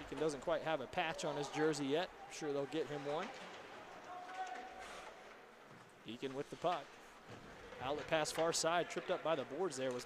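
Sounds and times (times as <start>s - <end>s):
faint ice rink background noise: 0.0s - 10.0s.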